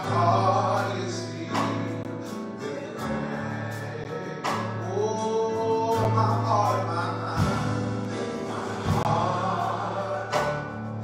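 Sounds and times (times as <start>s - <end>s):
group singing gospel with band: 0.0s - 11.0s.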